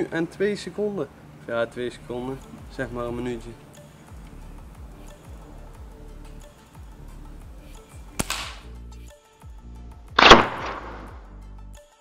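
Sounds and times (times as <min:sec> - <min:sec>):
background music: 0:00.0 - 0:12.0
air rifle firing crack: 0:08.1 - 0:08.7, 0:10.2 - 0:11.3
balloon bursting bang: 0:10.2 - 0:11.3.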